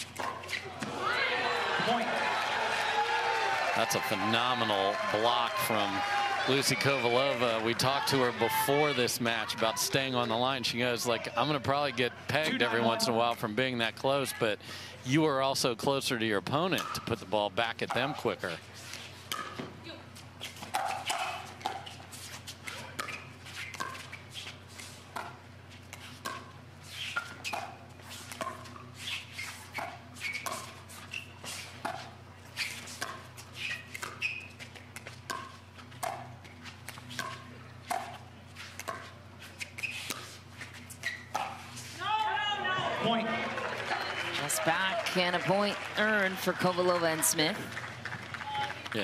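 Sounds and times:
crowd cheering: 0.6 - 10.4, 42.0 - 49.0.

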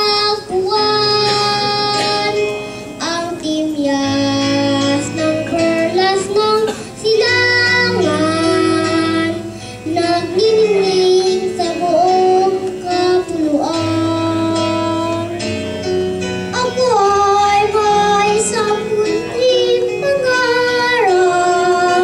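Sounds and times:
boy singing into microphone: 0.0 - 15.6, 16.5 - 22.0
instrumental accompaniment: 0.0 - 22.0.

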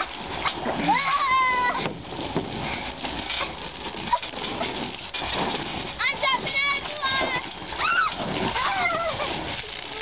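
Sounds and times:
water splashing on trampoline mat: 0.0 - 10.0
children squealing: 0.8 - 1.9, 7.8 - 9.4.

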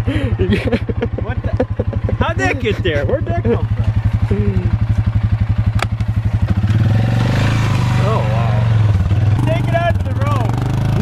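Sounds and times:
quad bike engine idling: 0.0 - 11.0.

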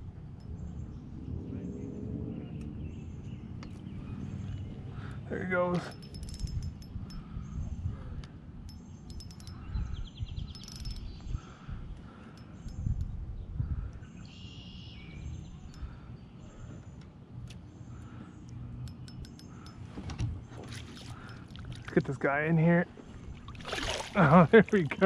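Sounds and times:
small birds chirping: 0.4 - 23.3.

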